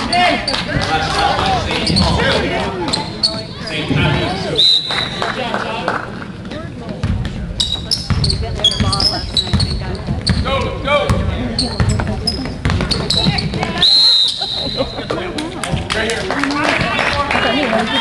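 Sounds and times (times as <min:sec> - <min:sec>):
sneakers squeaking on gym floor: 0:01.8 - 0:04.5, 0:07.1 - 0:15.2
basketball dribbling: 0:06.9 - 0:13.8.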